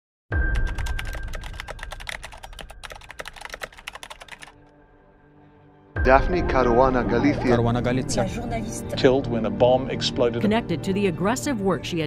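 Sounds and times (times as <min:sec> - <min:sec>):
computer keyboard typing: 0:00.5 - 0:04.6
low music drone: 0:04.7 - 0:11.6.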